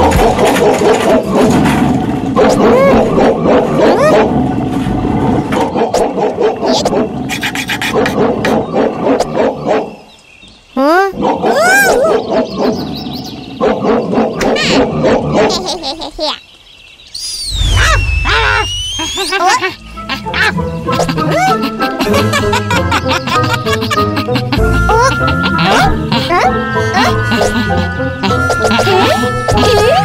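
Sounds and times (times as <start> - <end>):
wordless cartoon character voices: 2.4 - 4.3, 14.4 - 16.4, 17.7 - 22.6, 23.4 - 30.0
comic sound effects: 17.4 - 30.0.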